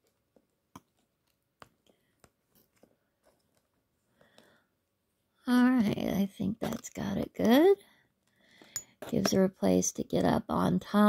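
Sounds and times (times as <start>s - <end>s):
tweezers clicking and tapping: 8.6s - 9.4s.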